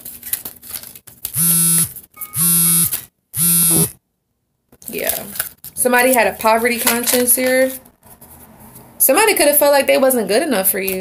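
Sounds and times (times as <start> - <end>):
loud electric buzzes: 1.4 - 4.0.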